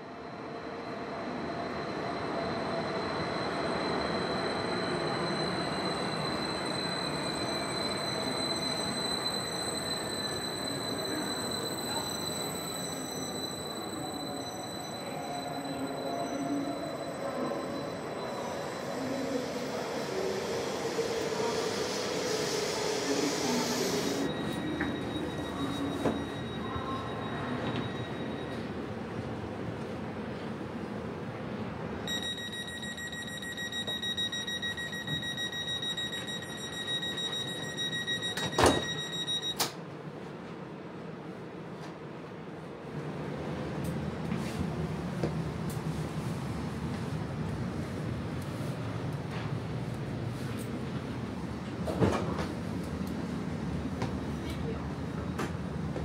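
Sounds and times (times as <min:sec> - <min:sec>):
high wheel squeal: 0:01.7 - 0:28.7.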